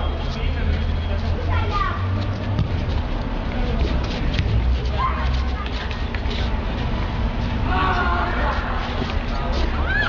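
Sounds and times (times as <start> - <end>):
indistinct voices: 0.0 - 10.0
steady low rumble: 0.0 - 10.0.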